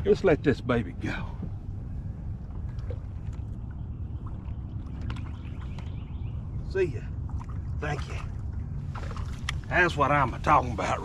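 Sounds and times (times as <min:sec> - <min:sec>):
steady low rumble: 0:00.0 - 0:11.0
water splashes: 0:02.3 - 0:11.0.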